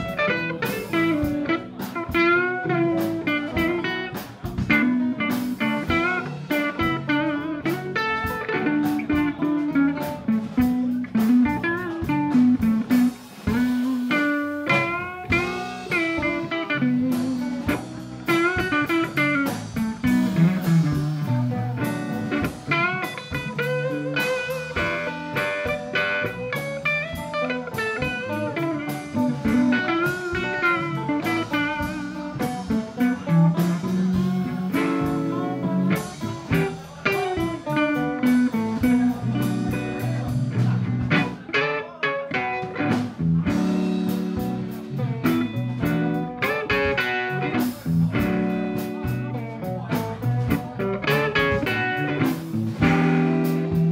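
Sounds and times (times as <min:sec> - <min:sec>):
blues band playing: 0:00.0 - 0:53.9
lead guitar bent notes: 0:00.0 - 0:53.9.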